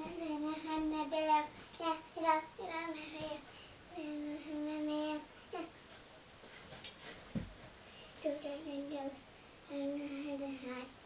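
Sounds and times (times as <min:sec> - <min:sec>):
girl singing unaccompanied: 0:00.0 - 0:05.8, 0:08.2 - 0:11.0.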